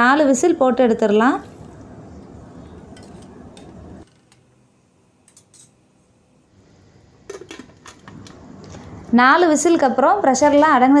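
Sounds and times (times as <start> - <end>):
metal spoon clinking on pot: 5.3 - 5.8.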